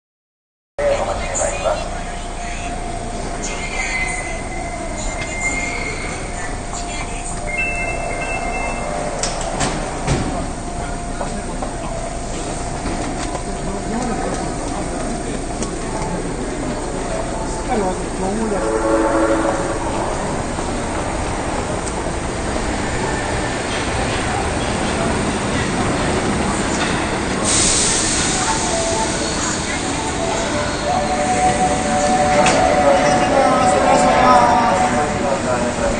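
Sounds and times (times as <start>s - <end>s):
subway train braking: 0.8s - 35.9s
high brake squeals: 4.1s - 6.4s
loud air hiss: 27.4s - 28.7s.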